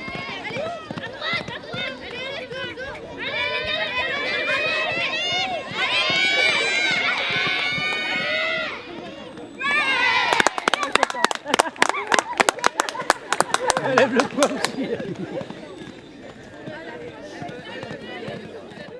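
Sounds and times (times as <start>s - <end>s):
hand claps: 10.3s - 14.8s.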